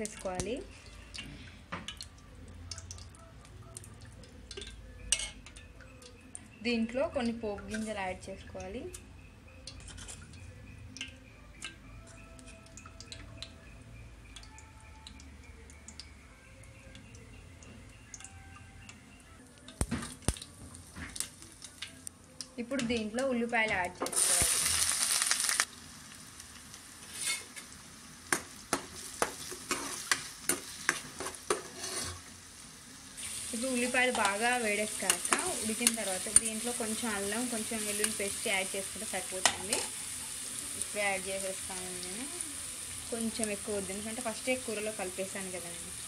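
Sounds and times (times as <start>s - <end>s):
seeds crackling in hot oil: 0.0s - 46.0s
spoon scraping metal pot: 9.8s - 10.3s, 27.1s - 27.6s, 29.7s - 32.3s
onions sizzling in oil: 24.0s - 46.0s.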